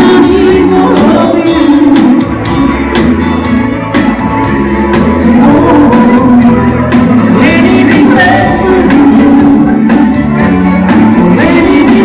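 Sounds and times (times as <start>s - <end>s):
person singing through pa: 0.0s - 2.9s, 5.1s - 10.0s, 11.1s - 12.0s
live band playing dance music: 0.0s - 12.0s.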